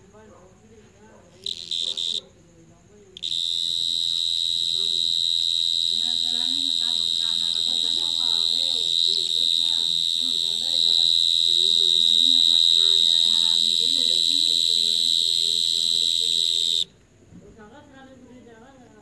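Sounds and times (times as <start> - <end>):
cricket trilling: 0.0 - 17.0.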